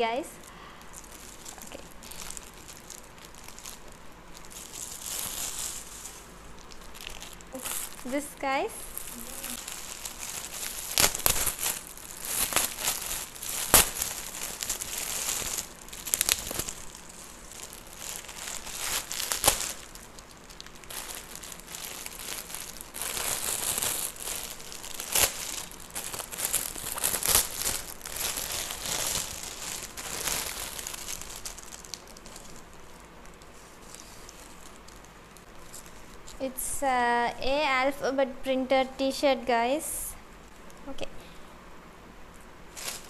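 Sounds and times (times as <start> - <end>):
plastic packet crinkling: 0.1 - 36.4, 42.7 - 43.0
gift wrap crinkling and tearing: 0.4 - 36.4, 42.7 - 43.0.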